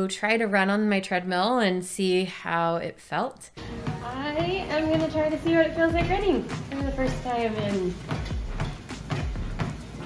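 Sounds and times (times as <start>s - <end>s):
treadmill motor humming: 3.6s - 10.0s.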